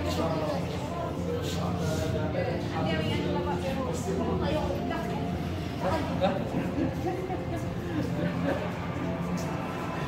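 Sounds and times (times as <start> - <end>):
voices chatting indistinctly: 0.0 - 10.0.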